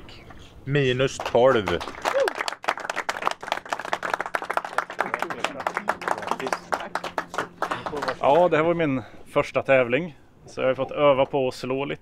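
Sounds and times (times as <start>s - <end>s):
audience applauding: 1.2s - 8.6s.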